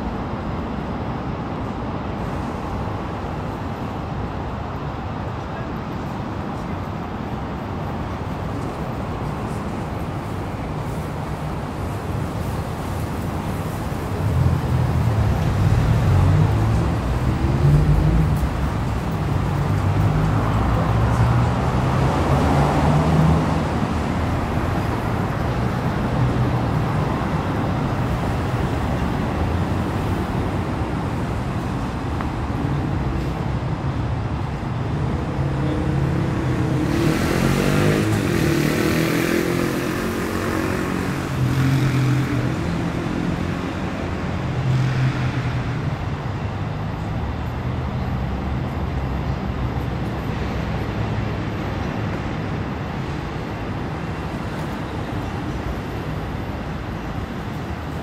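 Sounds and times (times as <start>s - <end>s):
cars going by: 0.0s - 58.0s
vehicle passing close: 35.0s - 46.0s.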